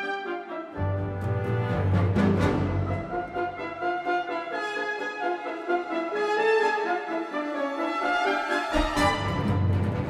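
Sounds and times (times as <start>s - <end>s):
symphony orchestra playing: 0.0s - 10.0s.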